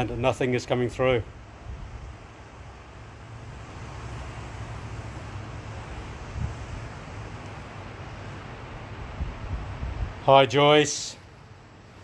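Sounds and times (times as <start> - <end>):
wind on microphone: 6.1 - 7.3, 9.0 - 10.2.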